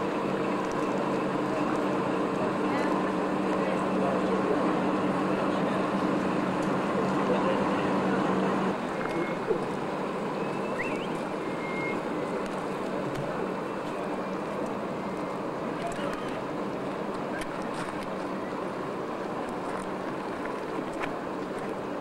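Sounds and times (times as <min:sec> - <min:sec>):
crowd voices: 0:00.0 - 0:22.0
ship engine humming: 0:00.0 - 0:22.0.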